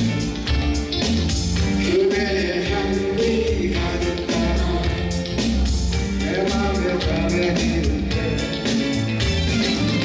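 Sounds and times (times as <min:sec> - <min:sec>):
instrumental accompaniment: 0:00.0 - 0:10.0
voices singing together: 0:01.9 - 0:05.2.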